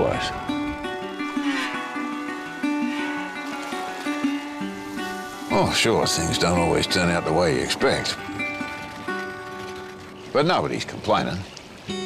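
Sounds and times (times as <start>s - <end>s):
plucked string instrument melody: 0.0s - 12.0s.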